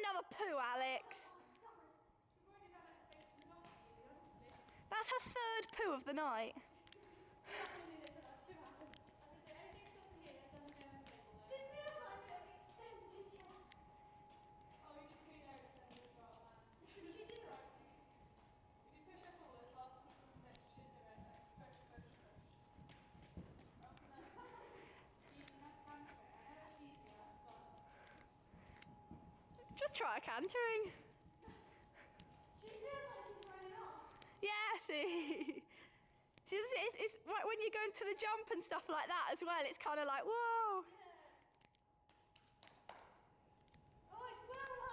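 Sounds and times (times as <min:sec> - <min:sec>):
faint steady hum: 0:00.0 - 0:44.9
horse hoofbeats on sand: 0:07.8 - 0:34.6.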